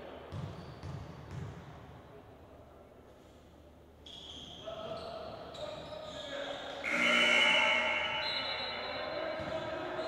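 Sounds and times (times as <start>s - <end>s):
sneaker squeaks: 0.3s - 1.4s, 4.0s - 10.0s
basketball bouncing: 0.3s - 1.7s.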